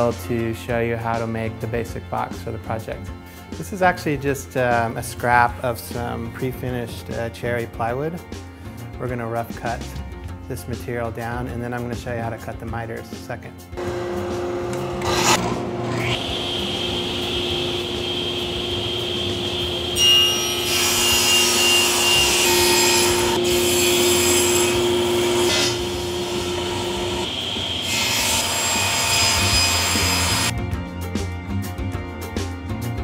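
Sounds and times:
saw blade cutting wood: 0:13.8 - 0:30.5
table saw motor humming: 0:13.8 - 0:30.5.

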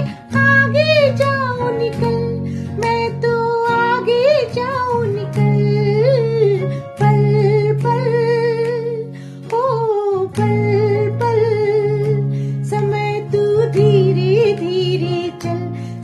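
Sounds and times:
woman singing slow melody: 0:00.0 - 0:16.0.

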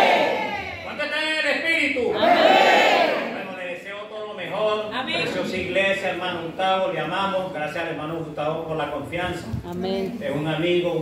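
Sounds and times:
congregation shouting: 0:00.0 - 0:01.1, 0:02.1 - 0:03.6.

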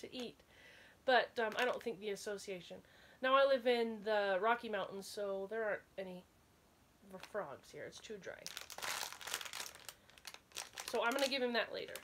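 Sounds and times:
plastic packaging crinkling: 0:01.5 - 0:01.9, 0:07.2 - 0:12.0.

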